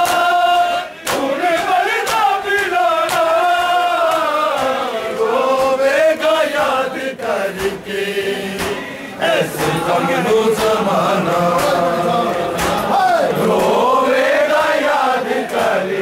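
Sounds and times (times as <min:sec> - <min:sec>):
hands slapping chests: 0:00.0 - 0:07.9, 0:08.6 - 0:13.9
men chanting in unison: 0:00.0 - 0:16.0.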